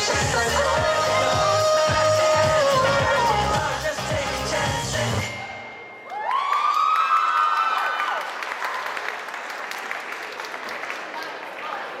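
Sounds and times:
long high-pitched scream: 6.0 - 8.2
audience applauding and cheering: 6.0 - 12.0.

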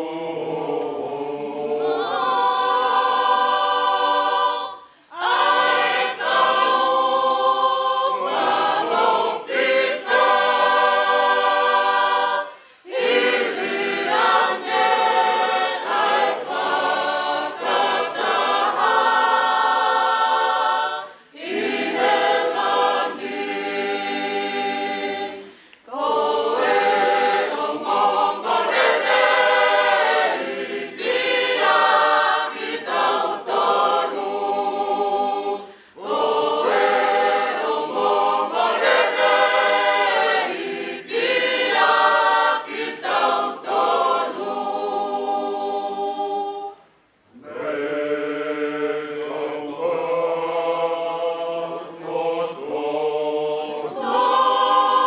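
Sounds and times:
choir singing unaccompanied: 0.0 - 55.0.

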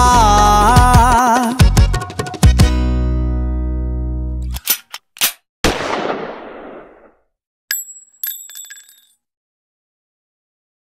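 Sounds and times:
metallic clicks ringing: 7.7 - 9.1
sharp metallic ring: 7.7 - 9.1.

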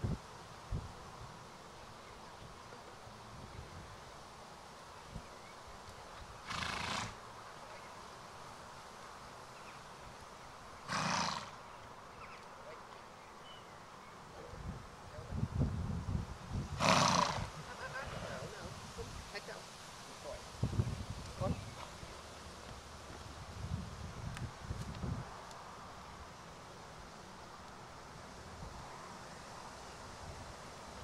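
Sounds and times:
horse blowing through its nose: 6.4 - 7.2, 10.8 - 11.6, 16.7 - 18.5.

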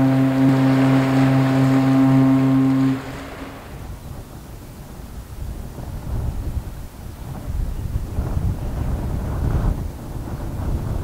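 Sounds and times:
ship's horn deep blast: 0.0 - 4.8
wind rumbling on microphone: 0.0 - 11.0.

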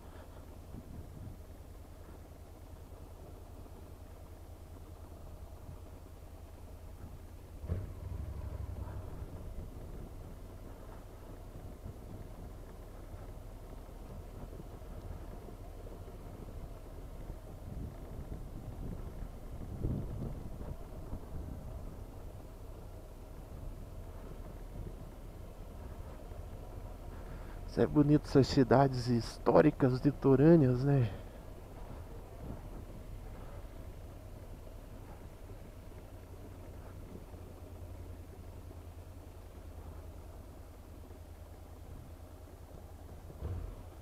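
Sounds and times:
motorcycle engine running: 0.0 - 27.8, 30.4 - 44.0
tyre rumble over cobblestones: 0.0 - 44.0.

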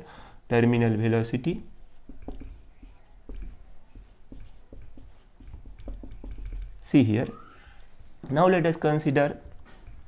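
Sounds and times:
marker writing on whiteboard: 0.4 - 10.0.

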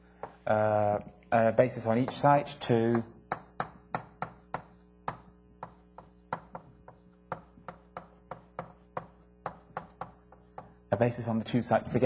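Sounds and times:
taps of writing on a board: 0.2 - 0.4, 1.9 - 11.0.

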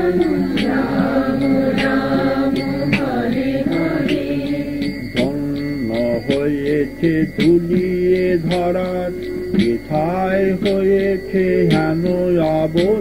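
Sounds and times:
voices chanting in held notes: 0.0 - 8.7.

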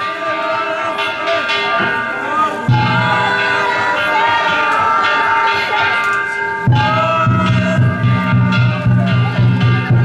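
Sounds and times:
hand gongs ringing: 0.0 - 10.0
deep rhythmic percussion: 0.9 - 10.0.

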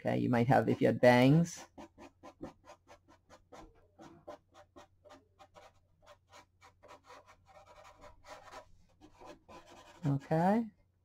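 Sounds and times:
marker scratching on paper: 0.6 - 10.2.

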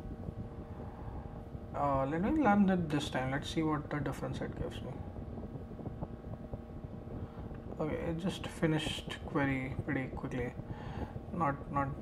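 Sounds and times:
faint steady hum: 0.0 - 12.0.

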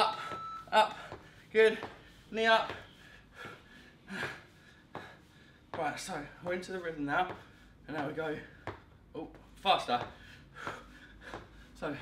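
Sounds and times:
man breathing hard: 0.1 - 5.7, 7.3 - 8.8, 10.1 - 12.0.

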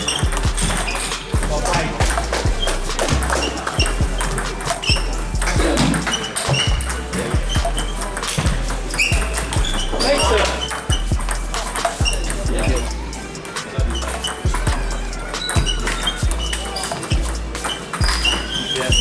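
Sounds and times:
hum of voices: 0.0 - 19.0
ping pong ball clicking: 7.7 - 12.4.

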